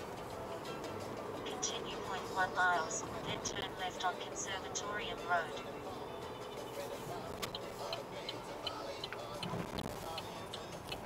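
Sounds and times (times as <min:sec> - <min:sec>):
low car cabin hum: 0:00.0 - 0:11.0
turn signal clicking: 0:07.3 - 0:11.0.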